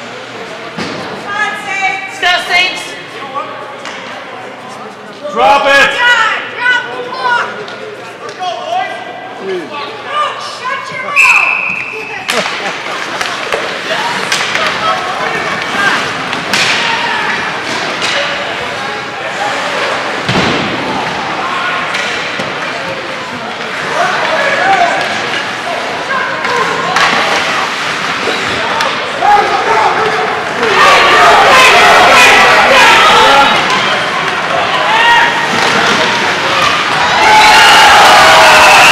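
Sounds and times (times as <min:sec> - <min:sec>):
hockey sticks and puck knocking: 0:12.3 - 0:18.4
spectators shouting: 0:28.4 - 0:38.9.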